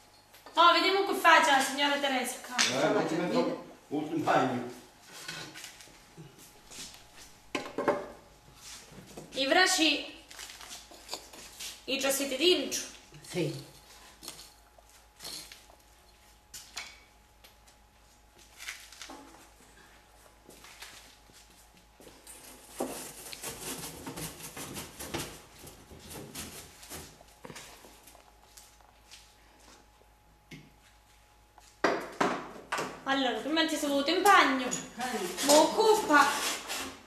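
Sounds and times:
knocks and scraping in brick oven: 0:22.1 - 0:27.8.

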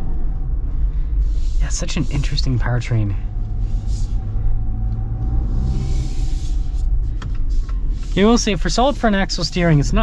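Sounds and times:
car interior low rumble: 0:00.0 - 0:10.0.

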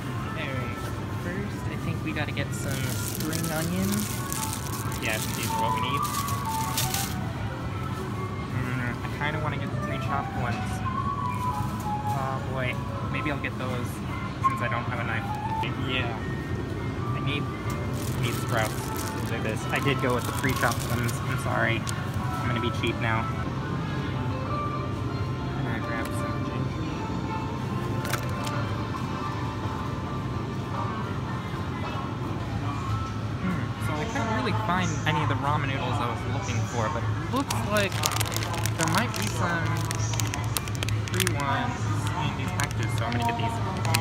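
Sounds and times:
faint background music: 0:00.0 - 0:44.0.

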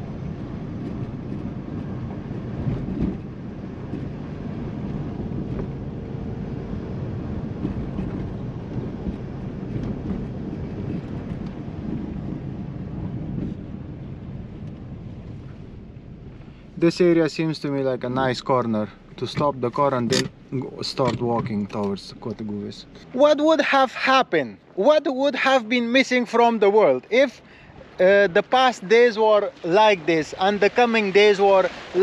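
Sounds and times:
road and engine rumble in car: 0:00.0 - 0:32.0.

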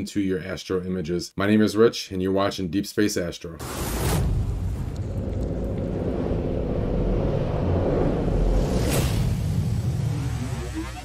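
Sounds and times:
whoosh: 0:03.6 - 0:11.0
deep rumble: 0:03.7 - 0:11.0.

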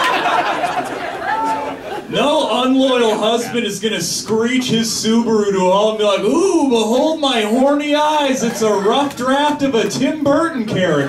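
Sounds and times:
audience laughing: 0:00.0 - 0:03.7, 0:08.1 - 0:10.3.

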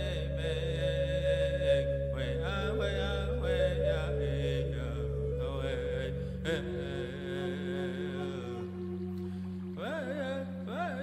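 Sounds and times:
chanted singing in vocables: 0:00.0 - 0:11.0.

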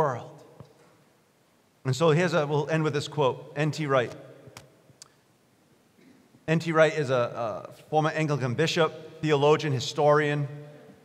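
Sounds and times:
man speaking: 0:01.9 - 0:04.2, 0:06.5 - 0:10.6.

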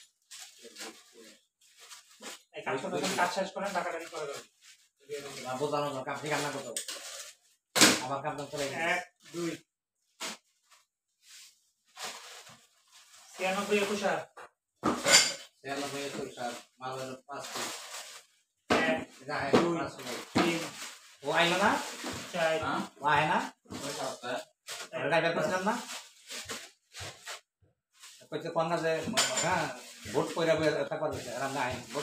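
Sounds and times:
people talking: 0:02.6 - 0:04.4, 0:05.1 - 0:06.7, 0:15.7 - 0:17.6, 0:18.7 - 0:21.8, 0:28.4 - 0:32.0
small items clinking on a table: 0:29.0 - 0:29.9.

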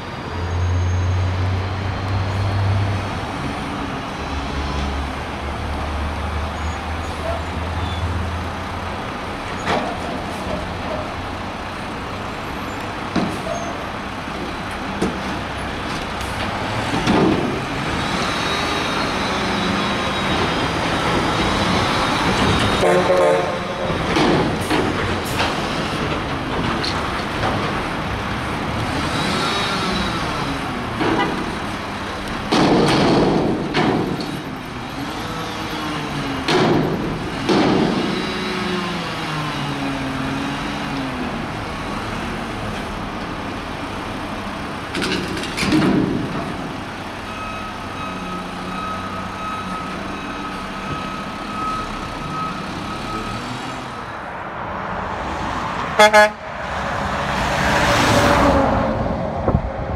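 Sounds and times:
diesel engine revving: 0:13.8 - 0:44.9.

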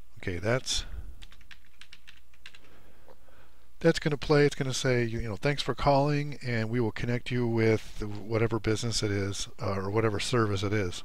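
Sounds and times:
man talking: 0:00.2 - 0:01.0, 0:03.8 - 0:11.0.

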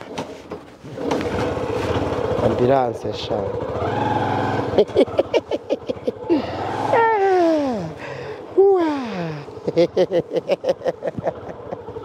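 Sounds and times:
laughter-like vocal pulses: 0:04.6 - 0:08.0, 0:09.3 - 0:12.0.

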